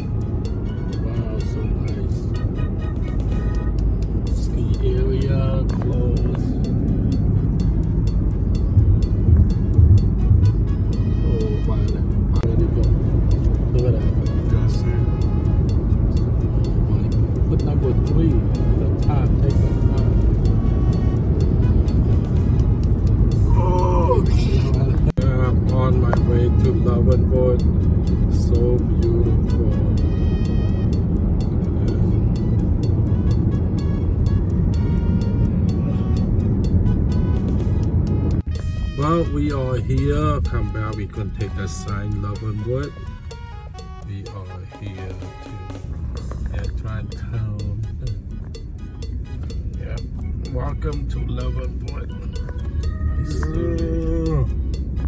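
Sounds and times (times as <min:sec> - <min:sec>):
car road and engine rumble: 0:00.0 - 0:55.0
music playing: 0:00.0 - 0:55.0.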